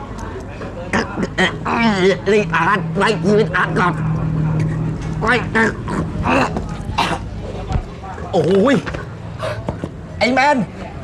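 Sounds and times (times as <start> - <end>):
steady low hum: 0.0 - 11.0
man choking vocal sounds: 0.9 - 4.0, 4.6 - 7.4.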